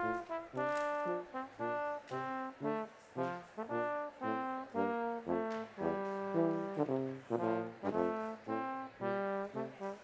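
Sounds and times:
brass ensemble playing chords: 0:00.0 - 0:10.0.

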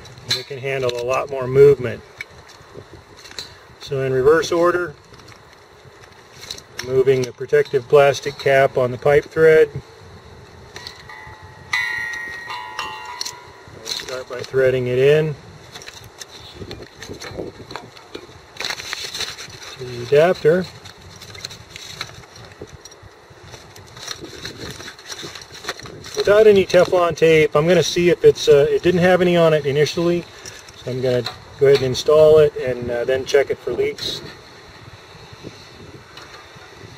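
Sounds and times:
outdoor background hiss: 0:00.0 - 0:36.9
wind rumble on microphone: 0:00.0 - 0:36.9.

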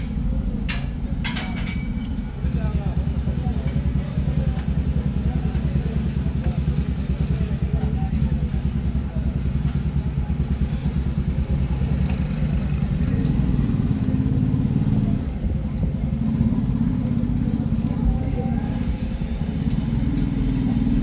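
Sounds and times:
indistinct voices: 0:00.0 - 0:21.0
vehicle engine rumbling: 0:00.0 - 0:21.0.

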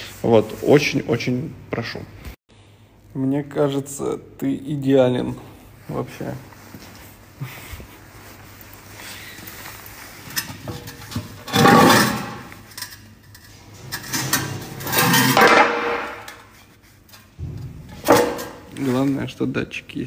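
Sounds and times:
metal wheel rim clattering: 0:10.2 - 0:18.8.

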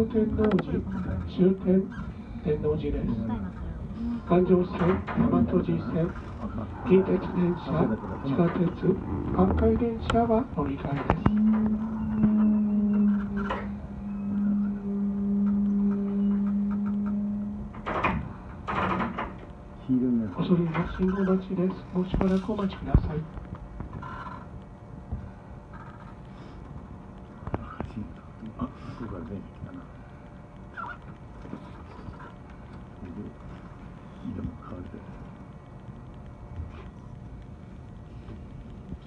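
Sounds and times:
electric train low hum: 0:00.0 - 0:39.0
low steady rumble: 0:00.0 - 0:39.0
train rattling clunks: 0:04.5 - 0:12.4, 0:17.6 - 0:19.6, 0:20.3 - 0:24.0.

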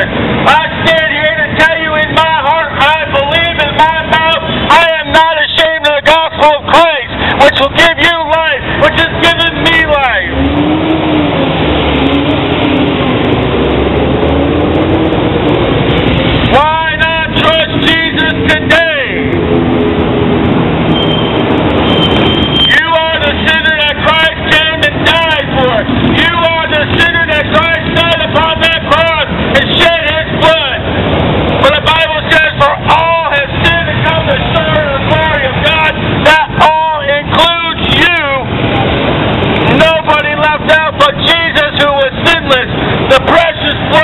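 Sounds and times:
motorcycles and cars passing: 0:00.0 - 0:44.0
person shouting: 0:31.7 - 0:38.4.

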